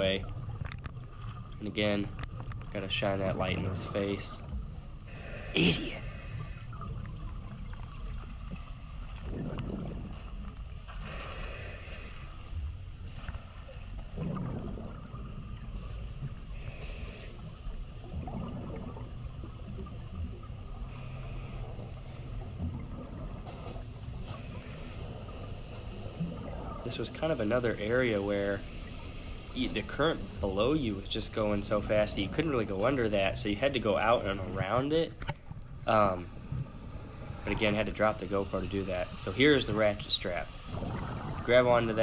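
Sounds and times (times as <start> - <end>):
regulator bubbles gurgling: 0.0 - 11.2, 13.6 - 42.0
low rumble of flowing water: 0.0 - 42.0.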